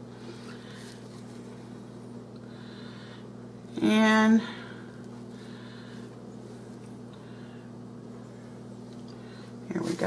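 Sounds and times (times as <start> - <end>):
steady low hum: 0.0 - 10.0
woman speaking: 3.8 - 4.6, 9.7 - 10.0.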